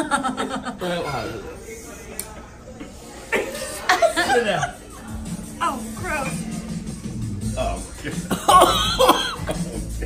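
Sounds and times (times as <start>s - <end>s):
man coughing and gagging: 8.3s - 10.0s.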